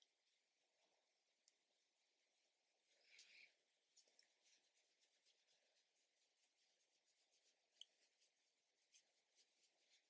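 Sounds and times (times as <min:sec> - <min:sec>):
makeup brush brushing skin: 0:01.7 - 0:10.0.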